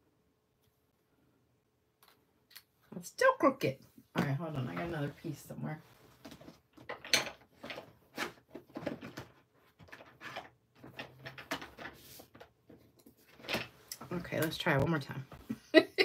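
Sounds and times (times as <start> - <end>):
knocks clicks and rustles: 6.3 - 14.7.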